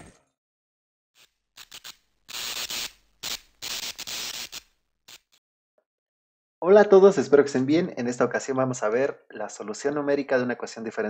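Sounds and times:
electronic static bursts: 0:01.2 - 0:05.4.

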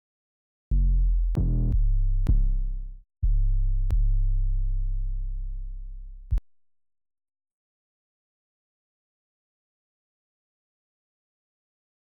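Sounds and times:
deep electronic bass notes: 0:00.7 - 0:06.4.

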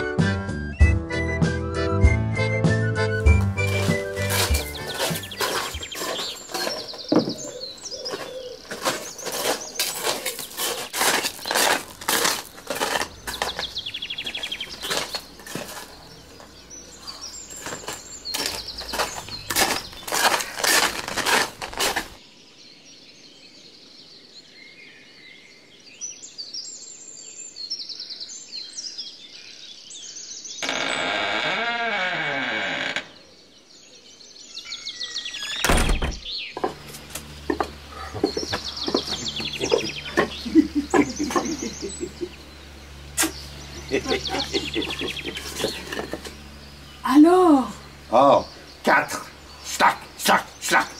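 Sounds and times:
birds chirping: 0:02.5 - 0:50.9
wooden door creaking open: 0:06.6 - 0:07.7, 0:30.6 - 0:33.3, 0:35.4 - 0:39.5.

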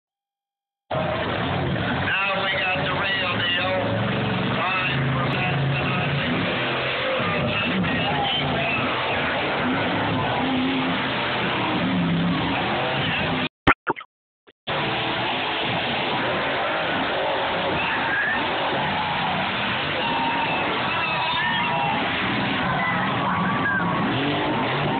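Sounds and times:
monster truck engine revving: 0:00.9 - 0:13.5, 0:14.7 - 0:24.9
announcer over pa: 0:13.2 - 0:14.1.

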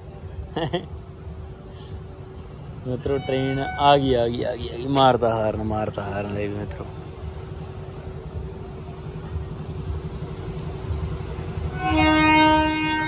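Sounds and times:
train horn blast: 0:03.1 - 0:04.2, 0:11.7 - 0:13.0.

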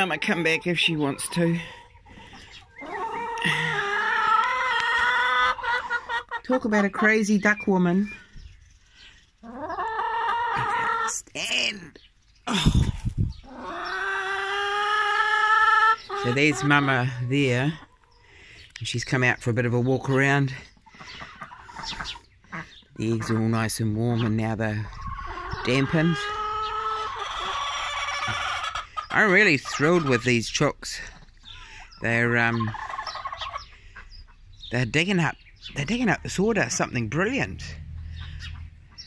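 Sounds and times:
poultry soft calls: 0:00.0 - 0:39.0.

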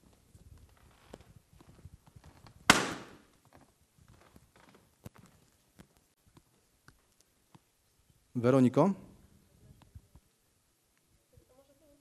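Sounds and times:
balloon bursting: 0:02.7 - 0:03.2.

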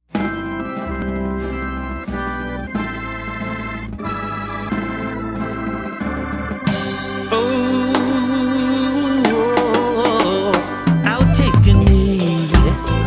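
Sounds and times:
organ playing held chords: 0:00.1 - 0:13.0
low bass line: 0:00.3 - 0:13.0.

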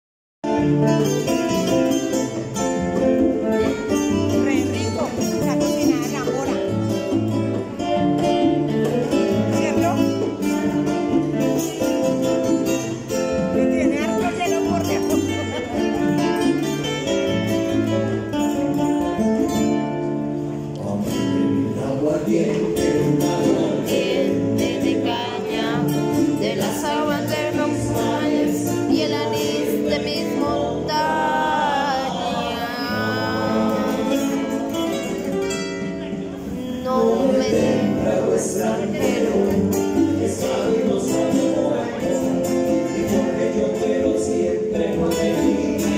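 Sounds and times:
acoustic guitars picking and strumming: 0:00.4 - 0:45.9
congas: 0:00.4 - 0:45.9
men singing: 0:20.6 - 0:35.4, 0:36.5 - 0:45.9.

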